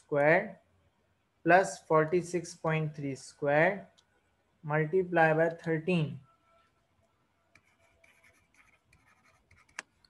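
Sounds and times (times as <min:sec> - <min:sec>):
stylus scratching while writing: 0:07.6 - 0:09.9.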